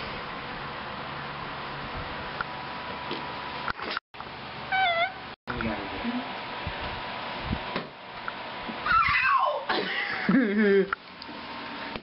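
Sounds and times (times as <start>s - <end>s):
wavering meow-like call: 4.7s - 5.2s.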